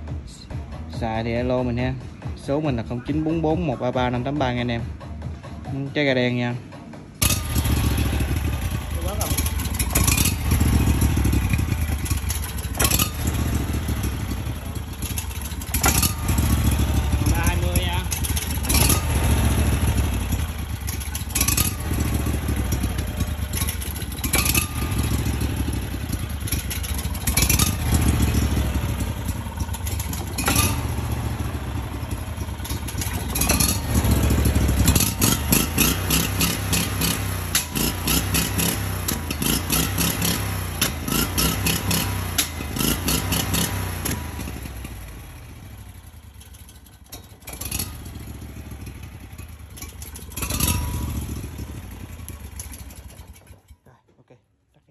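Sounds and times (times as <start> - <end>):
engine sharp cracks: 7.1 - 53.8
small engine revving: 7.2 - 45.6, 46.6 - 53.7.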